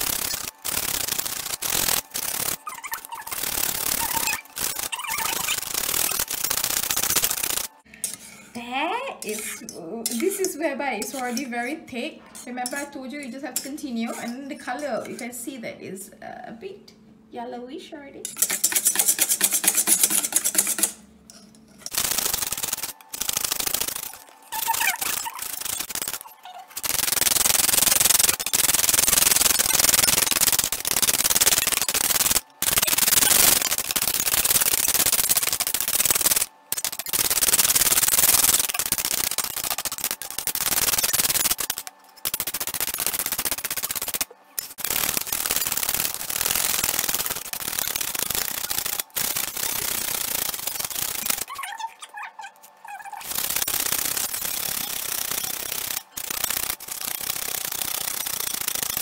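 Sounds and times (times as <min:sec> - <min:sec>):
whisk scraping metal bowl: 0:08.0 - 0:15.4, 0:18.2 - 0:51.5.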